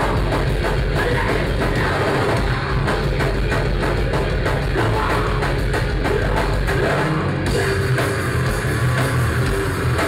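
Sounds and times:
electric guitars: 0.0s - 10.0s
fast drum-kit beat: 0.0s - 10.0s.

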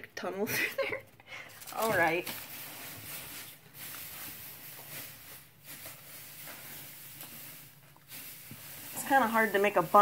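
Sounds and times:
dry hay rustling: 1.7s - 10.0s.

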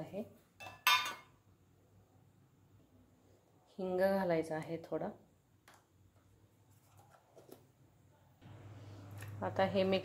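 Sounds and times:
metal kitchenware clinking: 0.6s - 1.4s.

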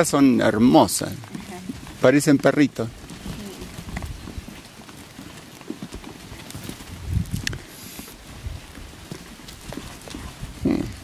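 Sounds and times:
hooves clattering on stony dirt: 0.0s - 11.0s.

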